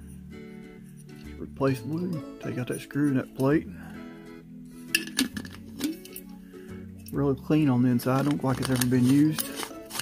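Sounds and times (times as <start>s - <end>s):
background music: 0.0s - 10.0s
metal canteen and cap clinking: 4.9s - 6.4s, 7.0s - 10.0s.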